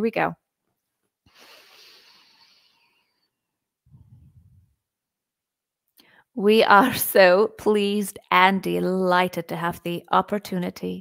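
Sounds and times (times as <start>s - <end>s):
woman breathing in deeply: 1.3s - 3.4s.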